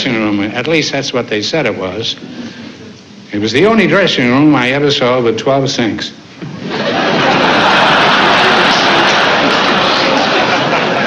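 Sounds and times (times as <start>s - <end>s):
audience laughing: 6.4s - 11.0s
audience applauding: 7.0s - 11.0s.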